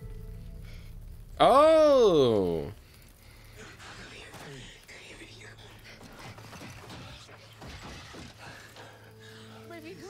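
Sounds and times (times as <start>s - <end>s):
breathy sounds: 0.4s - 7.5s, 8.1s - 9.7s.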